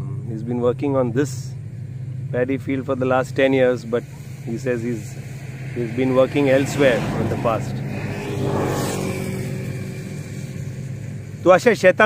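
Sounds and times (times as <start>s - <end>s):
motor engine humming: 0.0s - 12.0s.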